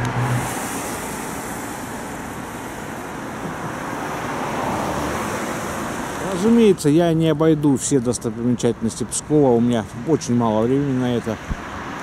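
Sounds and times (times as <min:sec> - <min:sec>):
cars passing on street: 0:00.0 - 0:12.0.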